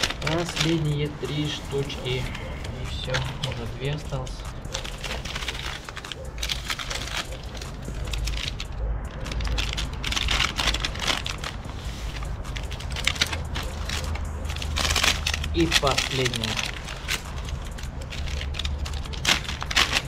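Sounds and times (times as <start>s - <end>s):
paper crinkling and crackling: 0.0s - 20.0s
scissors cutting paper: 0.0s - 20.0s
steady low rumble: 0.0s - 20.0s.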